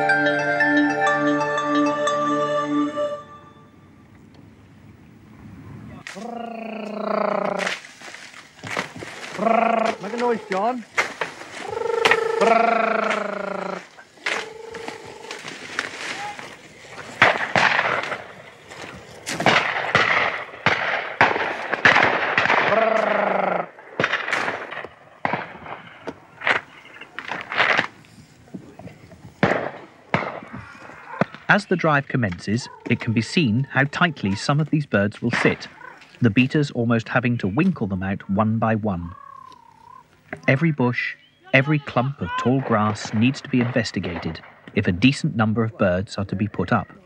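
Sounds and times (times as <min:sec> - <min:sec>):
dry stalks crackling underfoot: 0:06.0 - 0:40.6
people shouting long wordless calls: 0:06.1 - 0:07.8, 0:09.2 - 0:10.9, 0:11.5 - 0:20.1, 0:22.6 - 0:23.8, 0:30.2 - 0:36.4, 0:41.2 - 0:43.7.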